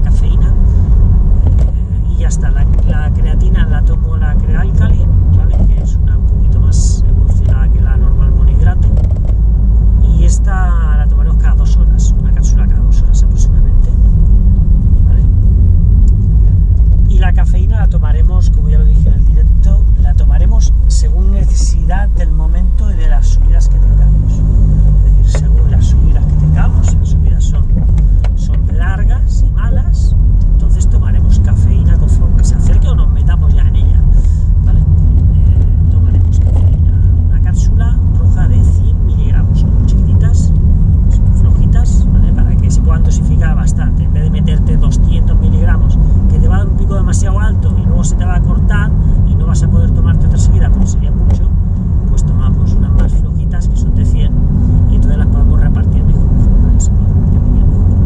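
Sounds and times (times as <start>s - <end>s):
man talking: 0.0s - 0.7s, 1.5s - 9.3s, 9.9s - 14.3s, 15.0s - 15.4s, 16.1s - 58.0s
road and engine rumble: 0.0s - 58.0s.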